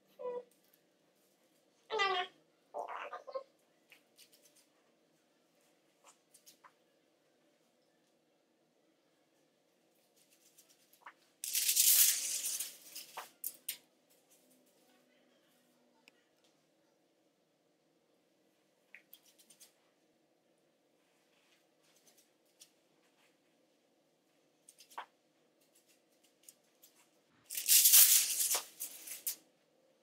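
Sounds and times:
foil and hair rustling: 25.6s - 29.4s.

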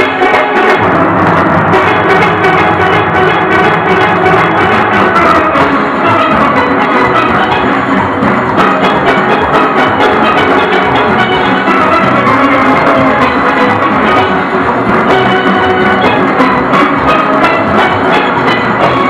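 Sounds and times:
drums and percussion: 0.0s - 19.0s
steelpans playing melody: 0.0s - 19.0s.

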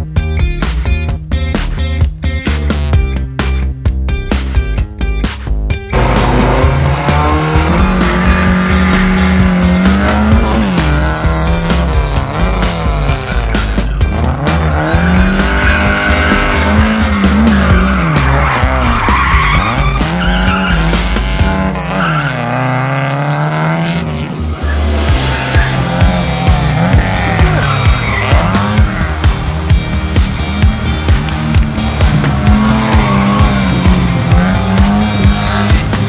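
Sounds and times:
car engine revving hard: 5.9s - 36.0s
tyres squealing: 6.0s - 23.0s, 24.5s - 36.0s.

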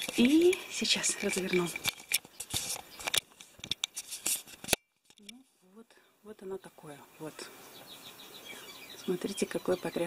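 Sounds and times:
phone handling rubs and clicks: 1.2s - 5.2s.

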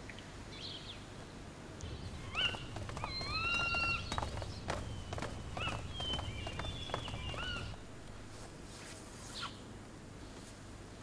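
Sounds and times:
crowd walking: 1.8s - 8.8s
faint bird chirps: 1.9s - 8.4s.

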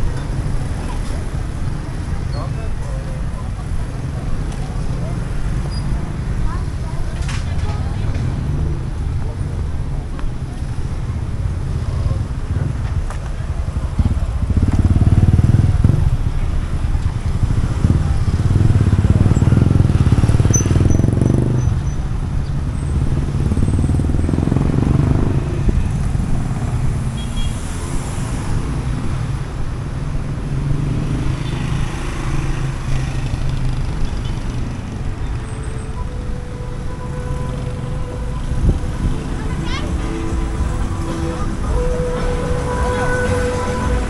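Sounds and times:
cars and motorcycles passing: 0.0s - 44.0s.

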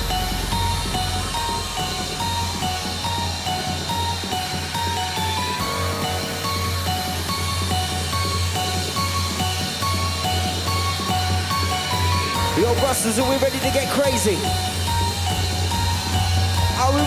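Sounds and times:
live electronic music: 0.0s - 17.0s.

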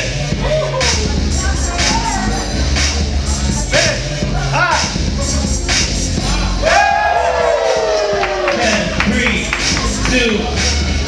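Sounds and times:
loud music with heavy bass beat: 0.0s - 11.0s.

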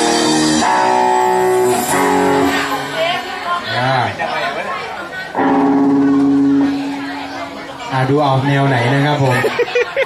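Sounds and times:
people talking: 1.5s - 10.0s
held electric guitar note: 5.4s - 8.2s.

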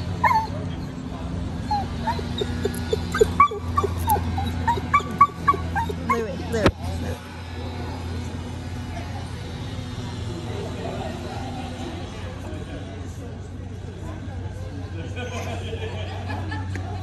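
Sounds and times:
dog whining and yipping: 0.0s - 1.0s, 1.6s - 6.7s.

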